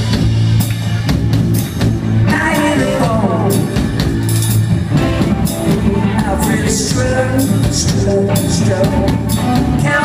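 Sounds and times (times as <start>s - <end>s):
drum kit and cymbals: 0.0s - 10.0s.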